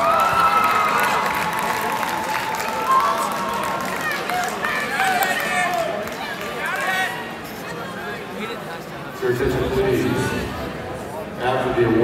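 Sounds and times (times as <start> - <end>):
crowd murmur: 0.0 - 12.0.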